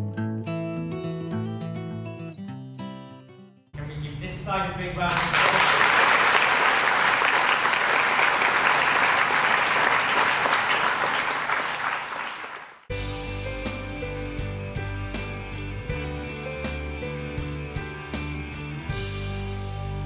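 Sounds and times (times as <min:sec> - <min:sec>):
audience applauding: 0:05.1 - 0:12.9.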